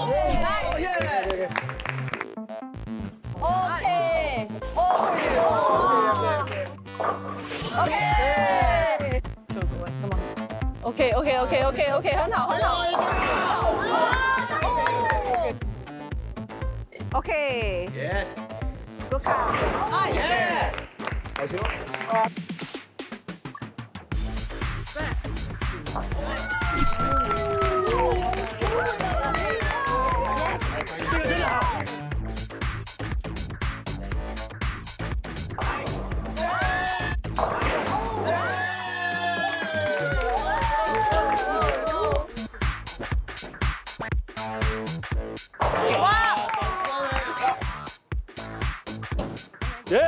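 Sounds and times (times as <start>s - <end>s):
background music: 0.0s - 50.0s
women yelling and shrieking: 26.2s - 30.6s, 38.1s - 42.2s.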